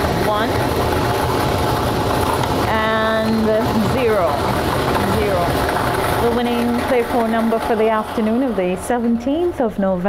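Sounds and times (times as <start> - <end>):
lottery machine whirring rumble: 0.0 - 10.0
voice with sliding pitch: 2.7 - 5.6, 6.2 - 10.0.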